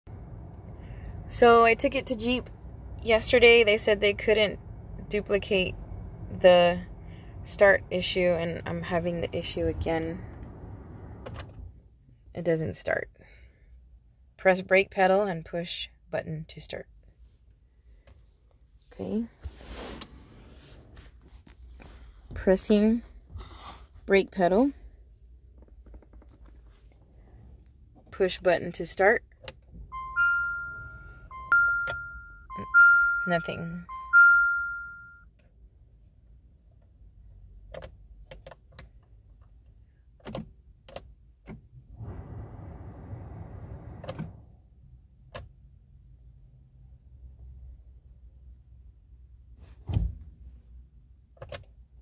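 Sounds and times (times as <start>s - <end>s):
faint low rumble: 0.0s - 28.6s, 41.7s - 45.1s
dashboard warning chime: 29.9s - 35.3s.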